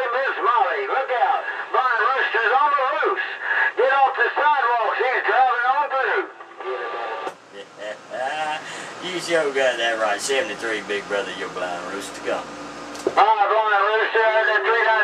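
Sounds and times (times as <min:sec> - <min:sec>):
voice over radio speaker: 0:00.0 - 0:12.4, 0:13.2 - 0:15.0.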